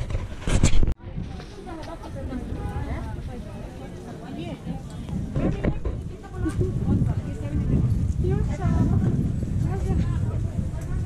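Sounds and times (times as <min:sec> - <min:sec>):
passers-by talking: 0:01.0 - 0:11.0.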